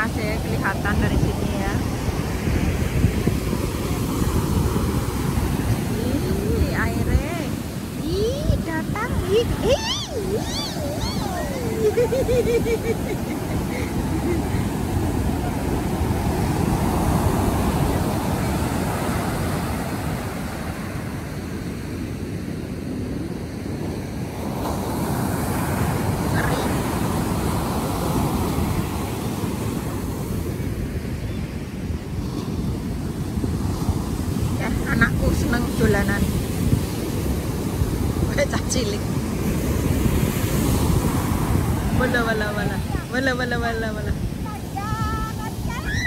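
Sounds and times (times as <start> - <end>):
ocean surf breaking: 0.0 - 46.0
wind buffeting microphone: 0.0 - 46.0
person laughing: 9.6 - 14.9.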